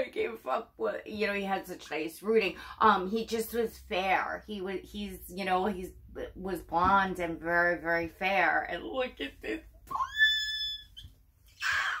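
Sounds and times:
woman squealing with delight: 9.9 - 11.0, 11.6 - 12.0.

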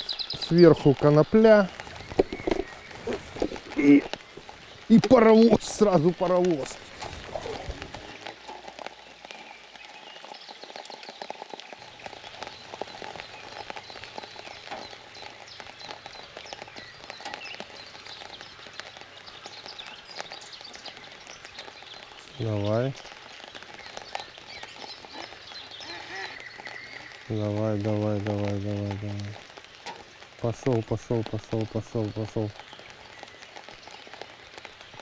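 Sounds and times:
rain on pond surface: 0.0 - 35.0.

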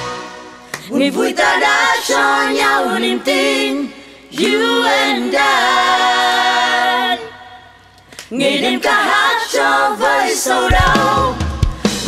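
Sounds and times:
women singing in harmony: 0.0 - 11.6.

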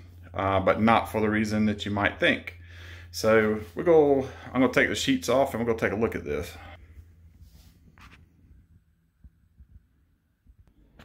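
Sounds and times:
faint low hum: 0.0 - 11.0
soft low thumps: 8.5 - 10.7.

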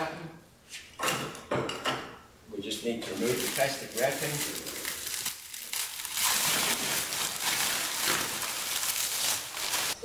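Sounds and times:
plastic film crinkling: 3.1 - 10.0.

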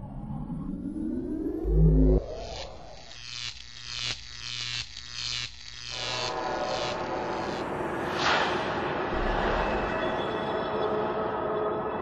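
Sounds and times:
dense hissing wash: 6.3 - 9.3.

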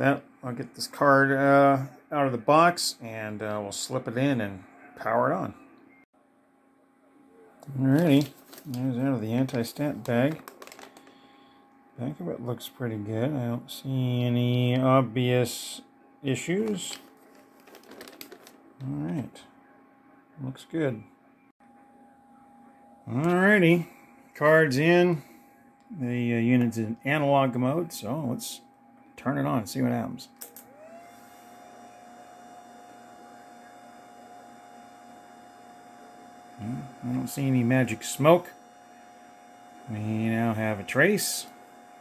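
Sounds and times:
electronic equipment hum and whir: 0.0 - 42.0
plastic bag crinkling: 7.8 - 11.2, 16.6 - 18.6.

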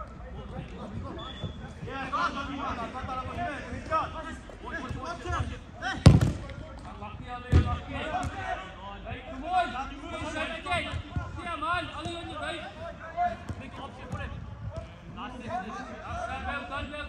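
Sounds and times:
players calling out: 0.6 - 17.0
football being kicked: 6.0 - 6.5, 7.5 - 8.4.

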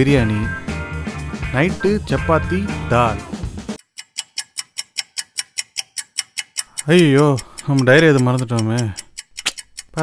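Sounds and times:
clock ticking fast: 1.4 - 10.0.

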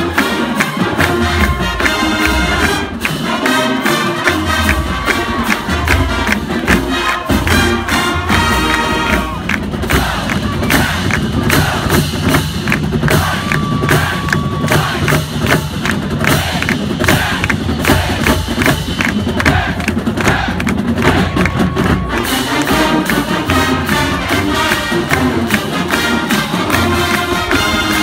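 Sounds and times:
brass playing: 0.0 - 12.1, 17.2 - 28.0
quick drum hits: 4.3 - 25.5
band members shouting a cheer: 4.7 - 12.0, 13.1 - 15.2.

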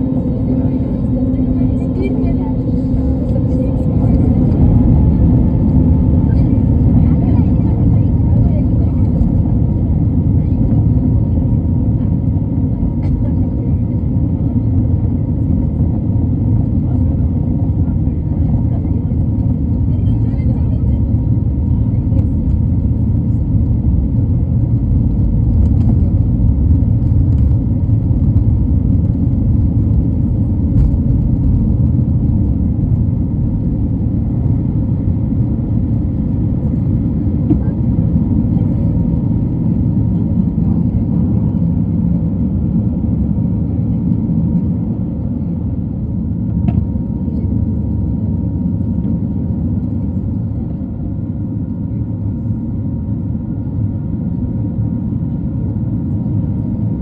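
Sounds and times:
jet engines rumbling: 0.0 - 57.0.

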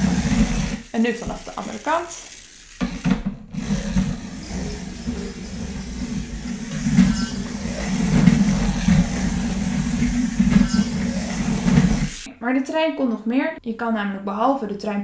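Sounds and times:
toy train motor hum: 0.0 - 12.3
toy train click on plastic track: 0.8 - 3.0.

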